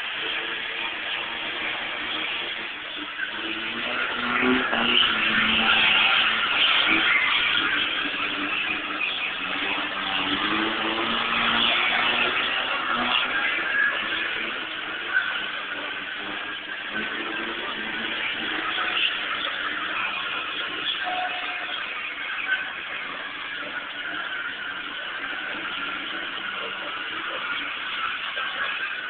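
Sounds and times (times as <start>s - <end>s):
car engines running: 0.0s - 29.0s.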